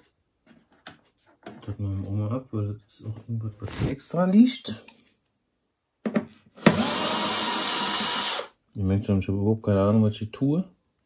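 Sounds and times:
cordless electric screwdriver running: 6.6 - 8.5.

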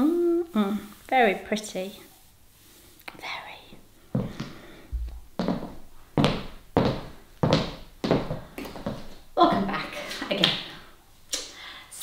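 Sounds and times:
high heels clicking on tiles: 4.2 - 10.7.

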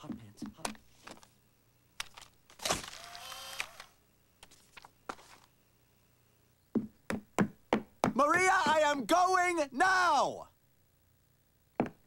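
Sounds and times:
camera motor whirring: 2.5 - 4.0
camera shutter click: 2.6 - 4.0.

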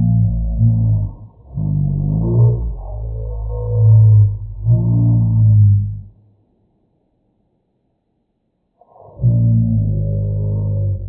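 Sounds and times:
slowed-down male voice drone: 9.0 - 11.0.

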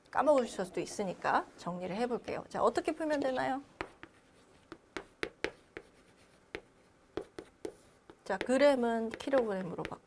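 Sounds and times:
chalk tapping on chalkboard: 3.8 - 10.0.

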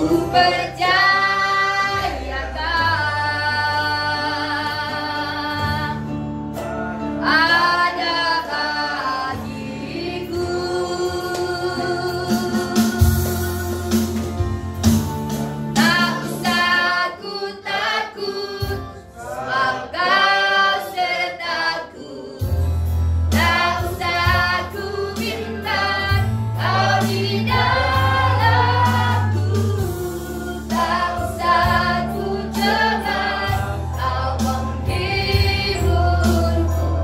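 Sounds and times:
voices singing along: 0.0 - 5.8, 15.8 - 22.6, 23.3 - 37.0
woman singing worship song: 0.0 - 6.1, 7.2 - 14.2, 15.8 - 22.6, 23.3 - 37.0.

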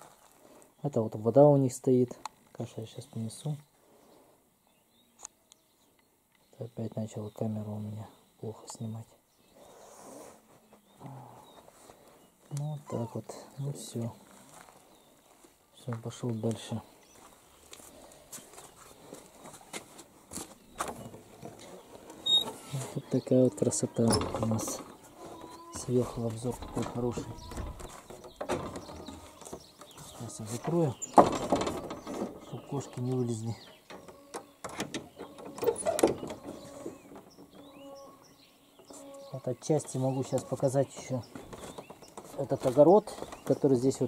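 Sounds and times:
small birds chirping: 0.0 - 44.0
footsteps on wooden floor: 17.1 - 22.4
short high squeak: 22.2 - 22.5
wooden door shut and fastened: 23.9 - 24.9, 26.2 - 29.9, 31.0 - 32.5, 33.9 - 37.7
light knocks and rustles: 23.9 - 37.8, 39.8 - 44.0.

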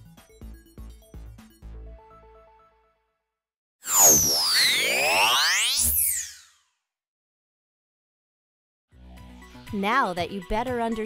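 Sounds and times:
whooshing pitch sweeps: 3.9 - 6.4
rising sweeps: 3.9 - 6.5.

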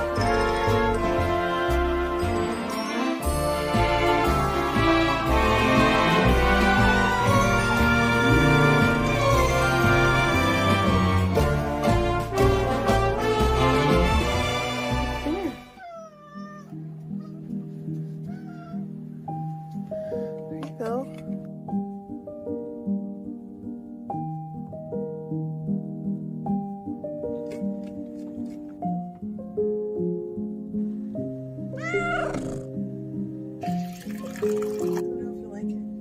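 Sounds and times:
soft background music: 0.0 - 36.0
cat meowing: 15.6 - 17.6, 18.3 - 18.9, 31.8 - 32.7.

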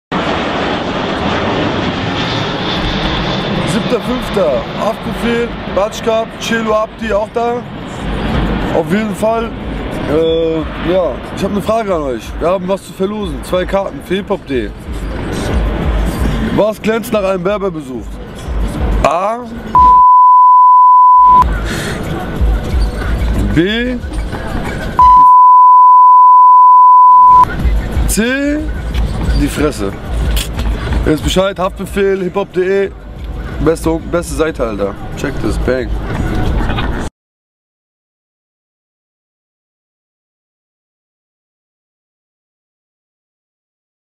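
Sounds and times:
jet airliner flying overhead: 0.1 - 19.8, 21.5 - 23.4, 31.8 - 37.1
censor bleep: 19.8 - 21.4, 25.0 - 27.5.

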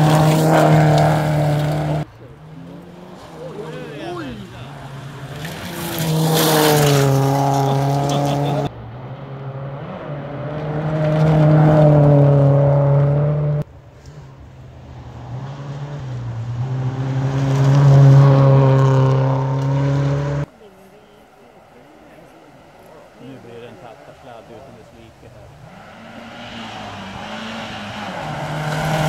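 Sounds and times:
rally cars passing at full throttle: 0.0 - 29.0.

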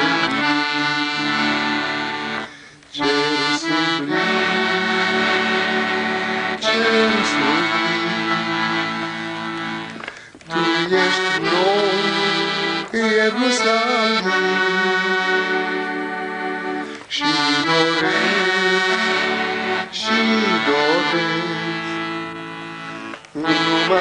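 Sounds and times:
accordion playing hymn chords: 0.0 - 24.0.

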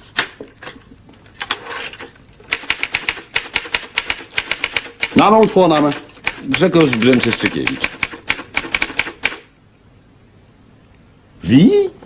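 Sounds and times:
typewriter keys clacking: 2.5 - 9.4.

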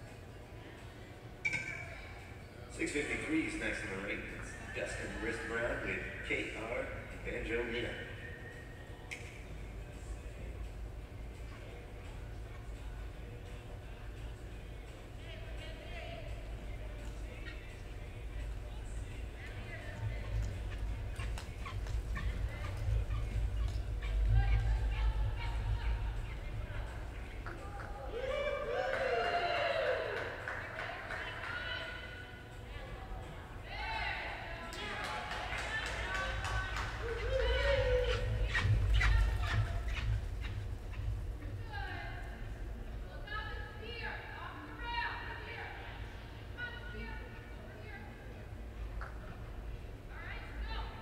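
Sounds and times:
indistinct voices echoing in a hall: 0.0 - 51.0
low arena room rumble: 0.0 - 51.0.

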